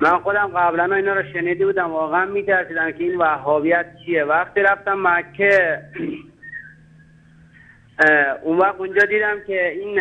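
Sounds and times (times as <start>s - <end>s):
faint high whistle-like tone: 6.4s - 6.8s.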